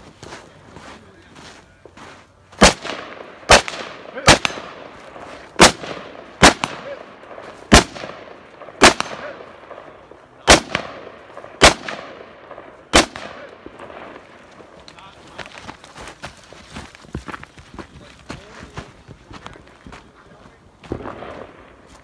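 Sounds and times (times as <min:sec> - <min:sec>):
rifle shots with echo: 0:02.6 - 0:14.9, 0:20.8 - 0:22.0.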